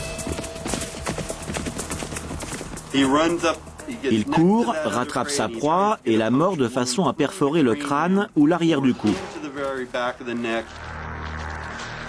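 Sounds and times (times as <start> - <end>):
hoofbeats galloping on dry ground: 0.0 - 5.0.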